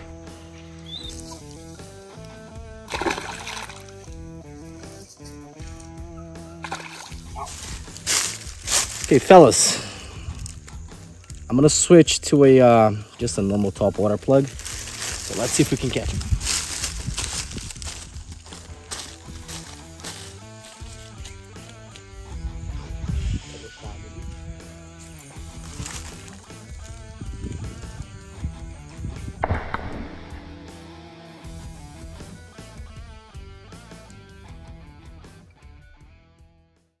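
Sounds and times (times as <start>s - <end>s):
background music with sustained chords: 0.0s - 36.6s.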